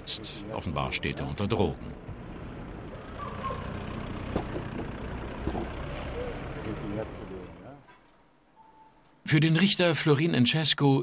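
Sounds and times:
vehicle engine idling: 0.0 - 8.3
street ambience: 0.0 - 10.8.

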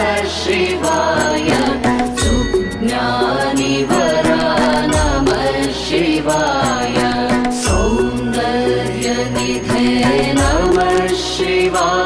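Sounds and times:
devotional chant singing: 0.0 - 12.0
instrumental music: 0.0 - 12.0
deep low beat: 1.5 - 8.6, 9.4 - 11.2.

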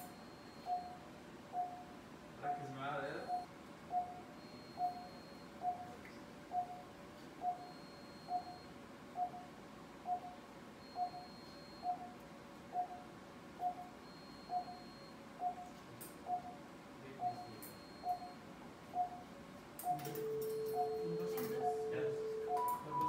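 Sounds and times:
patient monitor beeping: 0.0 - 23.0.

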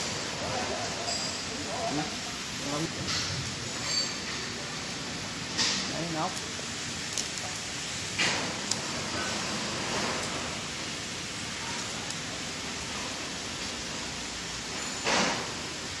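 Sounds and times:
workshop machinery hissing: 0.0 - 16.0.

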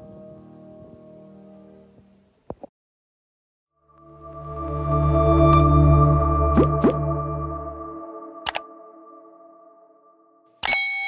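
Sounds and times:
notification bell ding: 10.6 - 11.0
ringing chime: 10.6 - 11.0.

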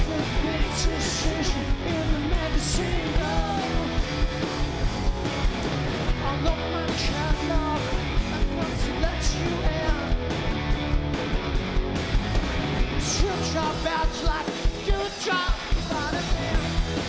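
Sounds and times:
lead vocal singing: 0.0 - 4.3, 6.2 - 10.2, 13.0 - 17.0
live rock band playing: 0.0 - 17.0.

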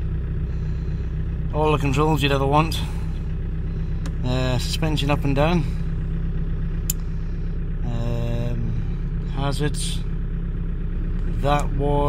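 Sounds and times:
diesel engine idling: 0.0 - 12.0
rocker switch click: 6.8 - 7.0.

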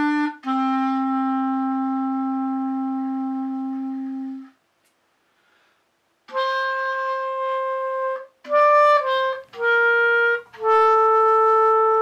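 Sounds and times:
clarinet holding long note: 0.0 - 4.6, 6.3 - 12.0.

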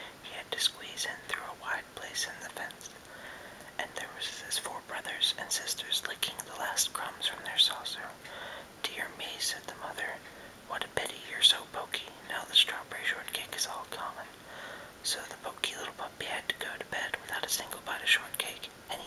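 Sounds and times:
man whispering: 0.0 - 3.1, 3.7 - 8.2, 8.8 - 14.4, 15.0 - 19.0.

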